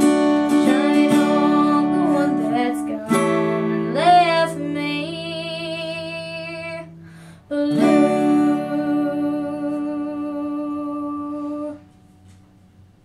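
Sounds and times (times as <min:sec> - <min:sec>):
acoustic guitar chord strummed: 0:00.0 - 0:12.6.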